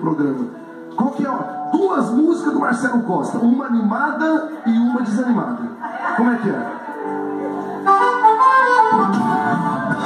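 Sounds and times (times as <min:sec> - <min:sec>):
live band playing: 0:06.6 - 0:10.0.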